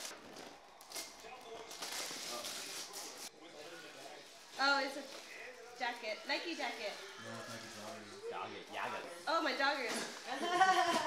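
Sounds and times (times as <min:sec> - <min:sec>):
tissue paper rustling: 0:00.0 - 0:03.3.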